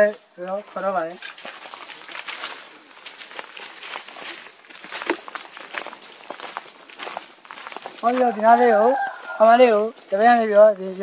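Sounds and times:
footsteps on dry debris: 0:00.0 - 0:11.0
man talking: 0:08.0 - 0:11.0.

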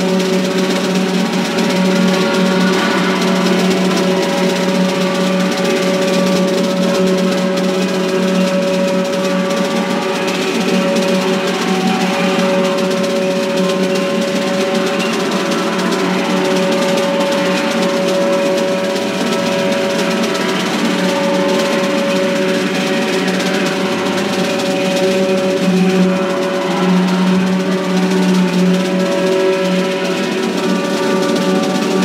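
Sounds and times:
drums: 0:00.0 - 0:32.0
horns holding long tones: 0:00.0 - 0:32.0.

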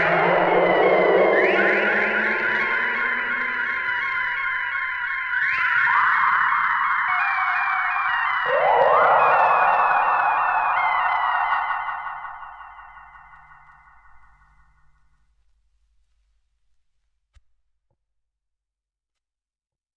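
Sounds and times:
electronic synthesizer music: 0:00.0 - 0:04.5, 0:08.3 - 0:13.5.

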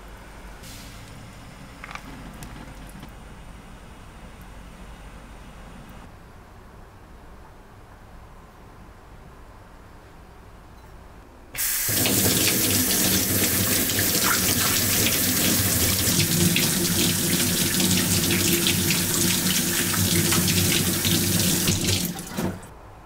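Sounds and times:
tap water running into sink: 0:11.6 - 0:22.7.

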